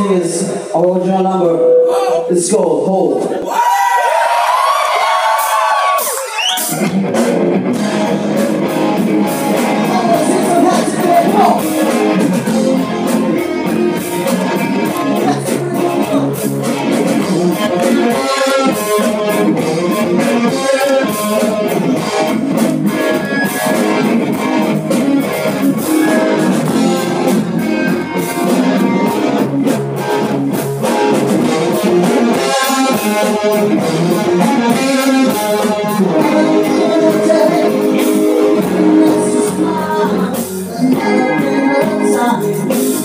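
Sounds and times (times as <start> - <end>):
live rock band playing: 4.9 - 43.0.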